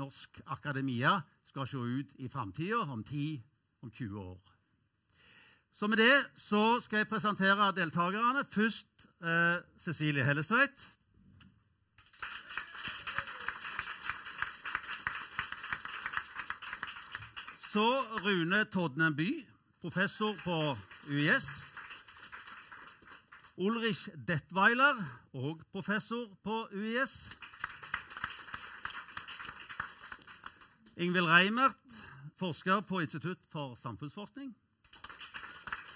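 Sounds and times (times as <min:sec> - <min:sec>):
audience applause: 0:12.0 - 0:18.3, 0:20.0 - 0:23.6, 0:27.3 - 0:30.9, 0:34.9 - 0:35.9
hands clapping: 0:12.0 - 0:18.6, 0:19.9 - 0:23.7, 0:27.2 - 0:31.0, 0:34.8 - 0:35.9.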